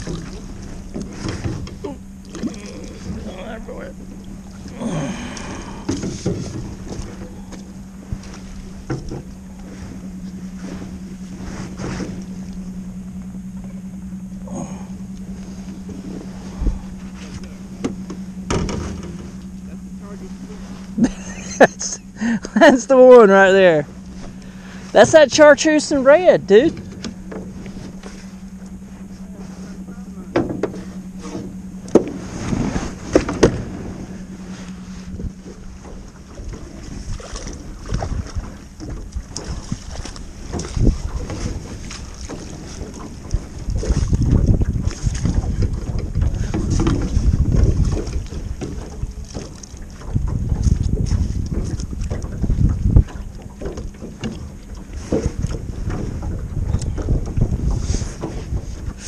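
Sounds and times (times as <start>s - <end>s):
wind buffeting microphone: 0.0s - 21.0s, 23.0s - 59.0s
steady low hum: 0.0s - 59.0s.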